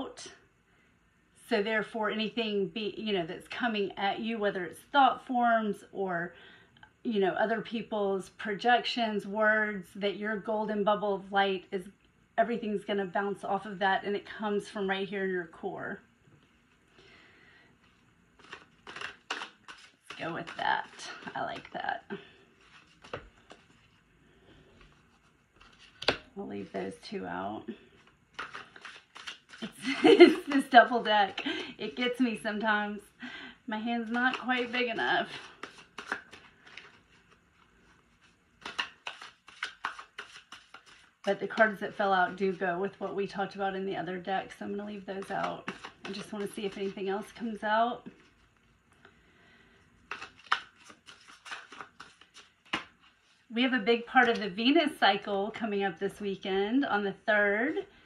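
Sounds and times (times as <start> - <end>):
cards soft clicks: 17.8 - 21.7, 22.6 - 23.9, 28.0 - 29.7, 34.1 - 37.3, 38.2 - 41.1, 50.1 - 53.1.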